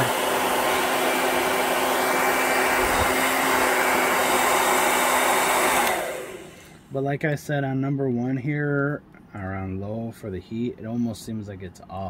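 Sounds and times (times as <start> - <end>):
hair dryer running: 0.0 - 6.9.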